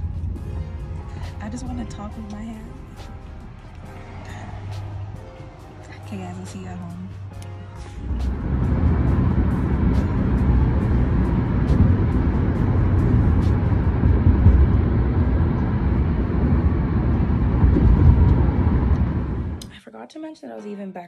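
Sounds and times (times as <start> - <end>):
car engine and road noise: 0.0 - 19.7.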